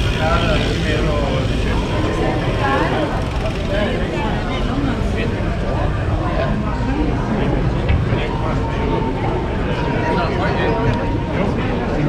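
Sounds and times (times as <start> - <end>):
passers-by talking: 0.0 - 12.0.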